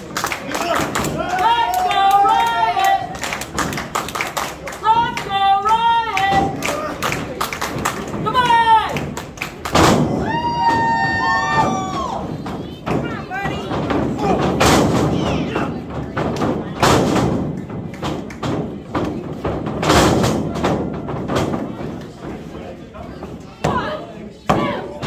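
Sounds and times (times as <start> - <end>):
spectators shouting: 10.1 - 12.4.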